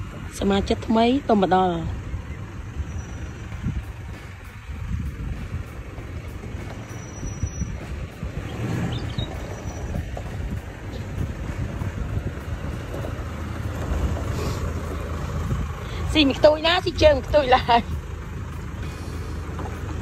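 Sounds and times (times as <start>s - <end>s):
vehicle engine rumbling: 0.0s - 20.0s
tyres rolling over gravel: 5.3s - 20.0s.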